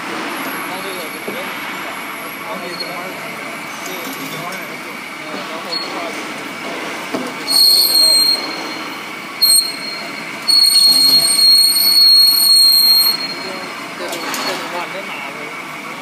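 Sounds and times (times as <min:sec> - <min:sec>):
pipe cutting machine running: 0:00.0 - 0:16.0
cutting tool squealing on steel: 0:05.7 - 0:06.0, 0:07.5 - 0:14.6.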